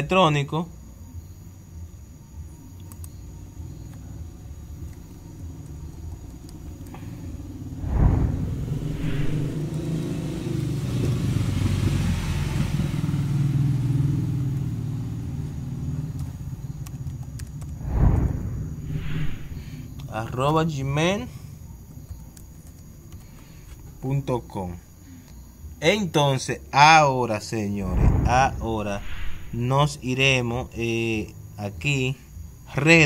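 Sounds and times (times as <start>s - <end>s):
motor vehicle engine rumble: 3.2s - 20.2s, 27.7s - 29.9s
low thumps: 7.8s - 9.8s, 17.8s - 19.9s, 27.9s - 29.6s.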